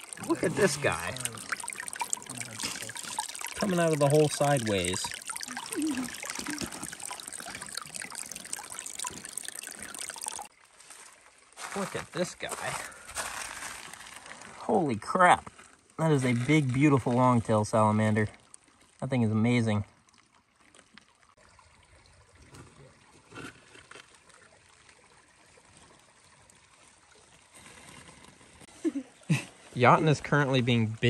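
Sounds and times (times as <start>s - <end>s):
creek trickling over stones: 0.0s - 31.0s.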